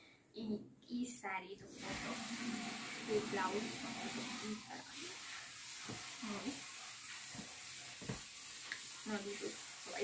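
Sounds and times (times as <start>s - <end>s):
steady hiss: 1.7s - 10.0s.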